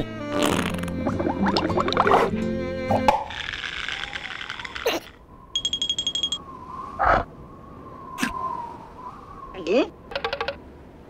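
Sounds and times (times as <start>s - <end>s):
rattling high beeps: 5.6s - 6.4s
faint held tone: 5.6s - 6.6s.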